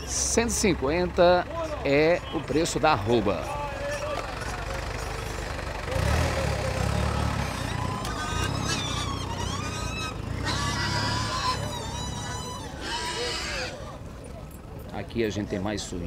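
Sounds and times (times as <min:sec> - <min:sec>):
high-pitched calls: 0:06.8 - 0:13.9.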